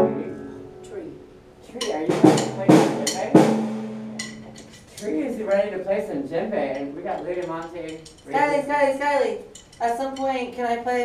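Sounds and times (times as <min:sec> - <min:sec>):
drum kit strikes: 0:01.8 - 0:04.8.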